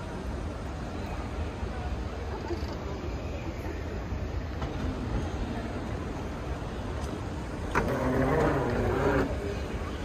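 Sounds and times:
crowd background: 4.6 - 10.0.

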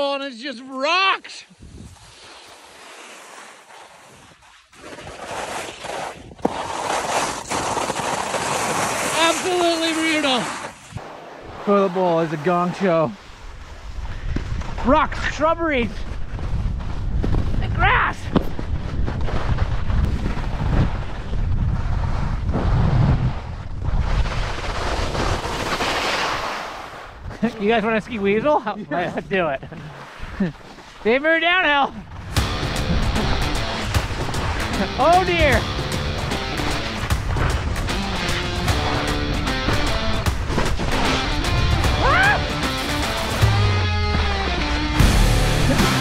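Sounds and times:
skis scraping over snow: 0.8 - 42.2
wind buffeting microphone: 15.9 - 25.4, 32.0 - 41.0.

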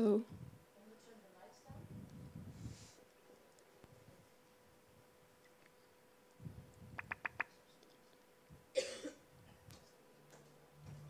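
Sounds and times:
faint steady hum: 0.0 - 11.0
sharp clicks: 7.0 - 7.5
person coughing: 8.7 - 9.2.

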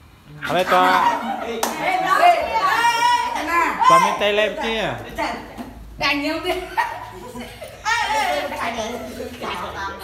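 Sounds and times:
boys calling out: 0.4 - 5.0.

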